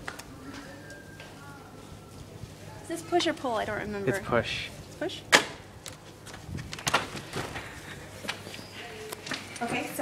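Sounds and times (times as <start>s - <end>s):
footsteps: 0.0s - 5.0s, 5.9s - 10.0s.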